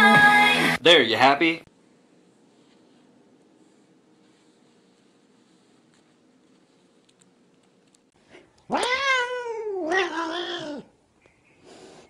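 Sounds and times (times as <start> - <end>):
cat meowing: 8.7 - 10.9.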